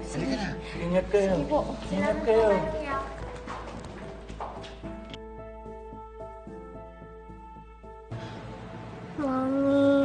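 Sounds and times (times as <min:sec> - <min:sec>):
soft background music: 0:00.0 - 0:10.0
footsteps on hard floor: 0:01.8 - 0:05.2.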